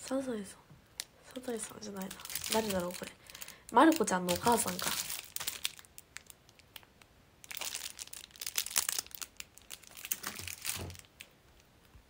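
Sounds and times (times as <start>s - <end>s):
packaging crinkling: 1.0s - 11.7s.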